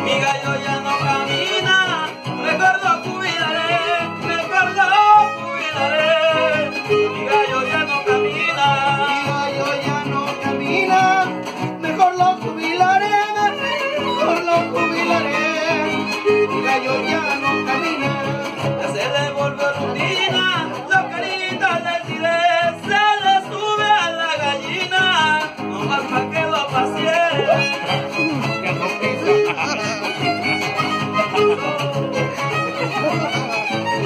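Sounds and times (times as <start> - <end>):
strummed guitars: 0.0 - 34.0
violin melody: 0.0 - 34.0.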